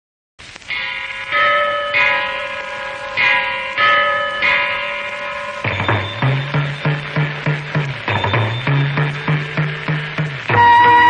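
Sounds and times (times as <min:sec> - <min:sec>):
bells ringing: 0:00.7 - 0:11.0.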